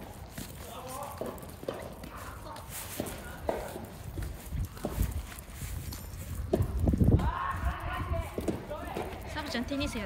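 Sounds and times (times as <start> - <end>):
dog claws clicking on paving: 0.0 - 10.0.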